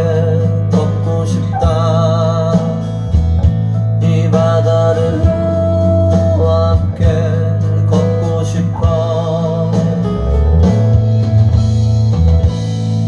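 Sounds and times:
song over loudspeakers: 0:00.0 - 0:13.0.

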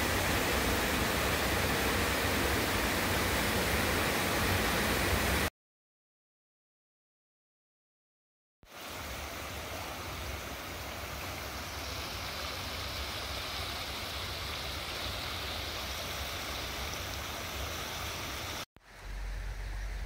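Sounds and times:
stream spilling over a weir: 0:00.0 - 0:05.5, 0:08.7 - 0:20.0.

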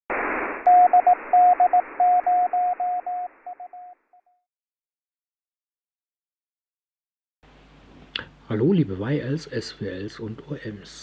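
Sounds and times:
radio receiver hiss: 0:00.1 - 0:02.4.

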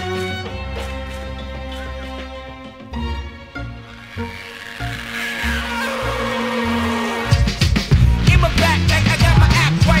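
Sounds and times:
song with pulsing bass line: 0:03.7 - 0:10.0.

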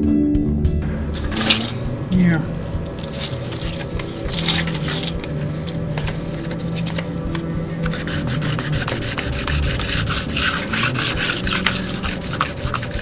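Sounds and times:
abrasive pad scratching metal rails: 0:03.0 - 0:13.0.

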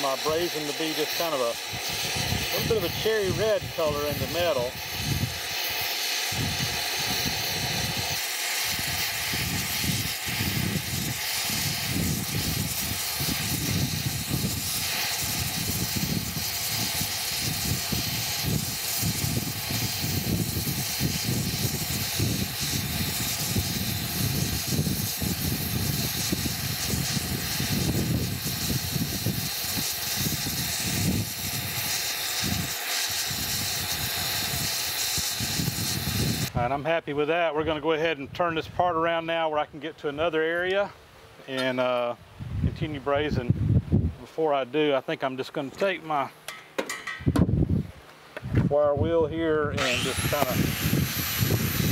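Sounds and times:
torch flame hissing: 0:00.0 - 0:37.0, 0:49.1 - 0:51.9.

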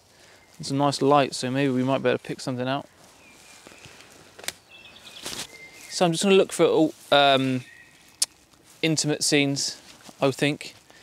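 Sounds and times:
footsteps on frozen leaf litter: 0:00.0 - 0:11.0
faint bird calls: 0:03.1 - 0:06.1, 0:07.3 - 0:08.4.

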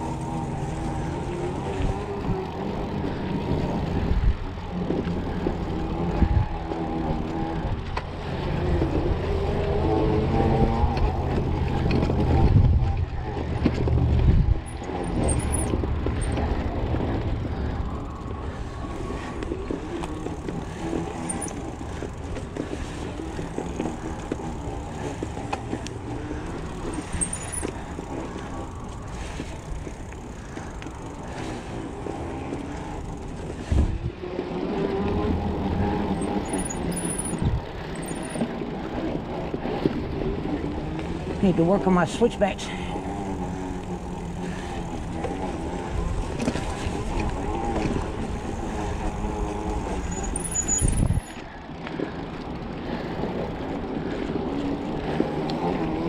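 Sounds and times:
wind noise: 0:00.0 - 0:41.4, 0:44.5 - 0:51.4
bike tyres rumbling and rattling: 0:00.0 - 0:56.0.

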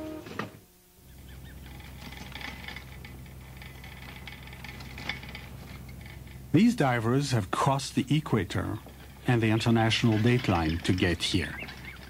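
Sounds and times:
steady low hum: 0:00.0 - 0:12.0
light rattles and clicks: 0:01.2 - 0:12.0.

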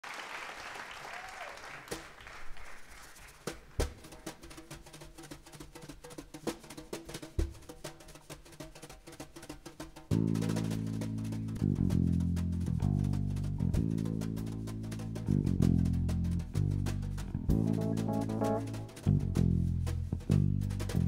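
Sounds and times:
audience applause: 0:00.0 - 0:04.0
drum kit taps and clicks: 0:09.4 - 0:21.0
bass drum thump: 0:15.2 - 0:21.0.

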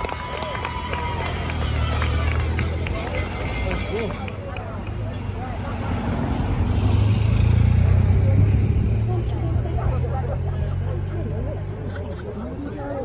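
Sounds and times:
spectators chattering: 0:00.0 - 0:13.0
vehicles driving past on wet road: 0:00.0 - 0:13.0.

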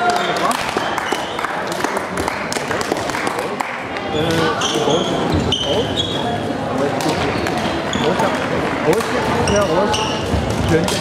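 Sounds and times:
many indistinct voices: 0:00.0 - 0:11.0
shoes squeaking on wooden floor: 0:09.4 - 0:10.8.

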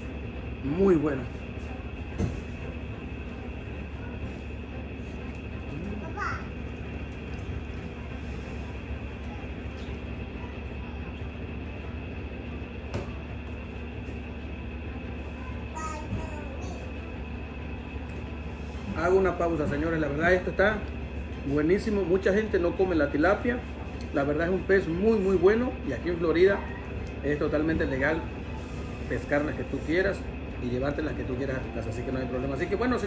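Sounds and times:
machine humming: 0:00.0 - 0:33.0.

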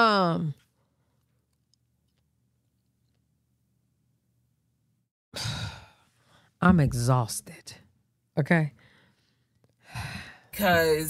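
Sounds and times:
woman sighing: 0:05.4 - 0:06.0.

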